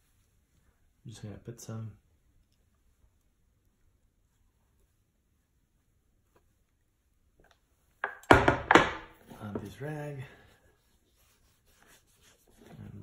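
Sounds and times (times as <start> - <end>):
metal tin knocking on wooden table: 8.0 - 9.1.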